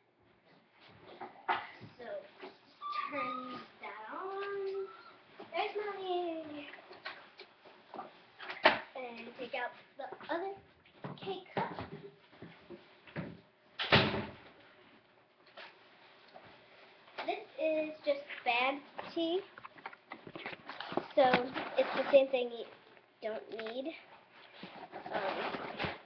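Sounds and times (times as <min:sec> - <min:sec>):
child talking: 0:01.8 - 0:06.8, 0:09.0 - 0:12.0, 0:17.2 - 0:19.5, 0:21.1 - 0:24.1.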